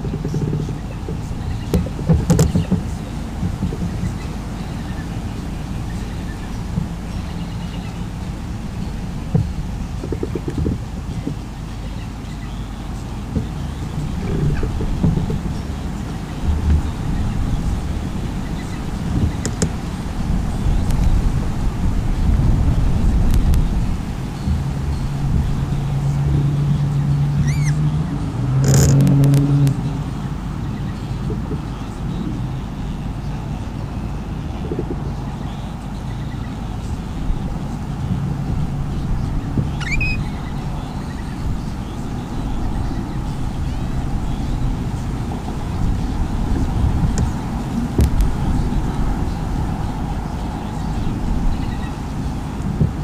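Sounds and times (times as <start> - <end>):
low outdoor rumble: 0.0 - 53.0
small bird chirps: 27.4 - 27.8, 39.7 - 41.4.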